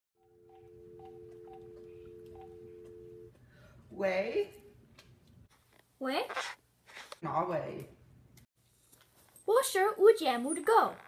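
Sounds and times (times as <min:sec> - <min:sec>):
steady telephone tone: 0:00.2 - 0:03.4.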